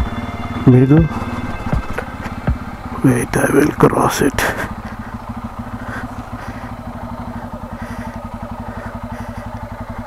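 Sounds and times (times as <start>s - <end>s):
motorcycle engine at low revs: 0.0s - 10.0s.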